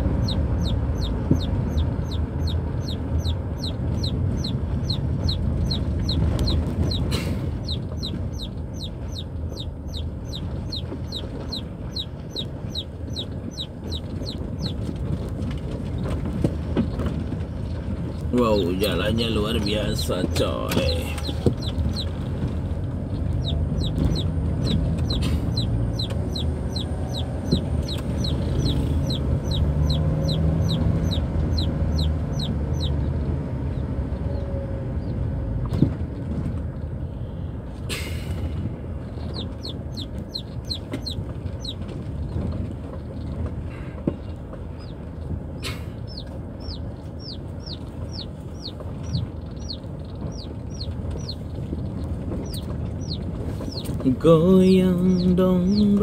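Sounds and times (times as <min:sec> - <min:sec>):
chickens chirping: 0:00.0 - 0:15.3, 0:18.5 - 0:22.2, 0:23.2 - 0:33.2, 0:39.0 - 0:43.3, 0:44.0 - 0:56.0
car engine and road rumble: 0:00.0 - 0:56.0
sharp knocks from bumps: 0:01.1 - 0:01.8.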